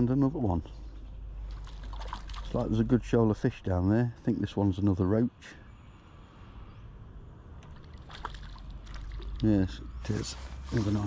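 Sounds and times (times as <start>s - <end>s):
fish splashing at water surface: 1.4s - 2.7s, 7.6s - 9.5s.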